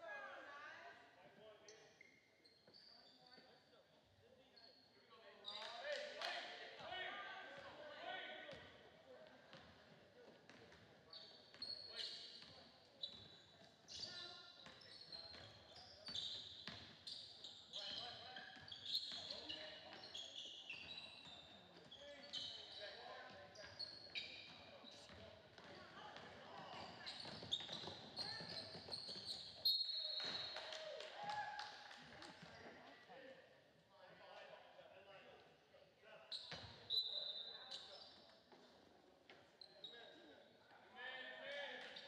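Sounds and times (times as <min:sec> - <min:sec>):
players and spectators voices: 0:00.0 - 0:42.0
sneakers squeaking on court: 0:10.5 - 0:30.8, 0:36.3 - 0:38.8.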